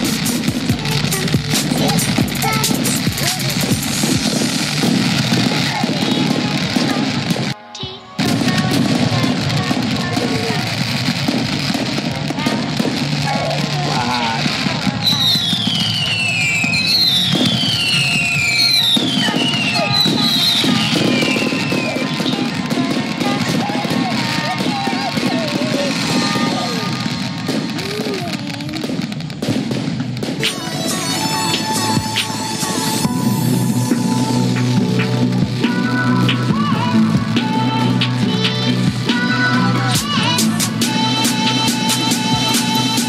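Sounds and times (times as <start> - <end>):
falling firework whistles: 0.0 - 7.6, 8.2 - 36.4
music: 0.0 - 27.8, 30.3 - 43.0
fireworks crackling and popping: 0.0 - 43.0.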